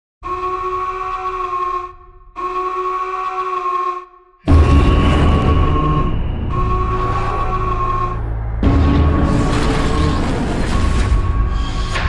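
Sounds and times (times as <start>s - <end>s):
long horn blasts: 0.2s - 10.1s.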